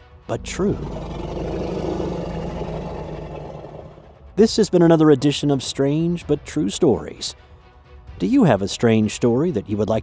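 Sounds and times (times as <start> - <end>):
low rumbling soundtrack drone: 0.2 - 5.7.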